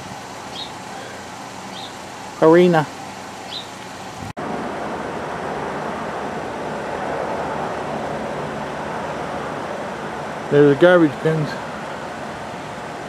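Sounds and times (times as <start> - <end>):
road traffic: 0.0 - 13.0.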